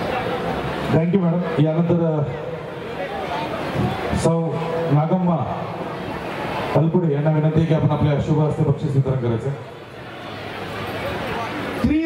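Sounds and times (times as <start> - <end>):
man talking: 0.9 - 2.6, 6.8 - 9.6.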